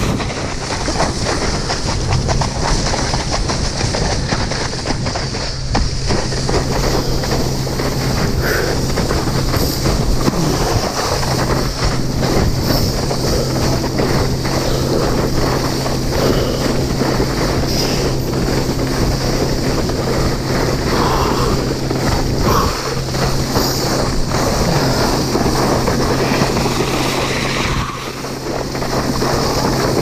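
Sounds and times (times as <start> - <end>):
water skis slapping choppy water: 0.0 - 30.0
water spray: 0.0 - 30.0
wind on microphone: 0.0 - 30.0.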